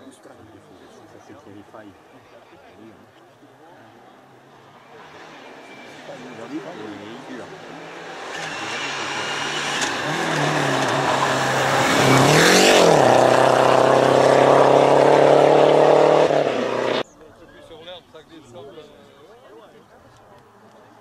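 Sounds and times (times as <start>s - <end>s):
rally car engine at high revs: 5.4s - 17.0s.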